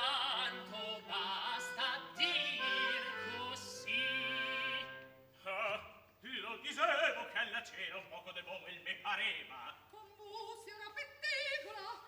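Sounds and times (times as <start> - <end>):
operatic singing: 0.0 - 6.0.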